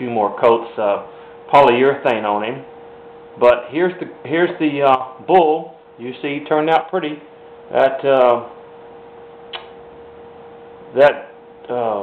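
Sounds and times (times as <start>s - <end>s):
steady hum: 0.0s - 12.0s
short click: 9.5s - 9.8s.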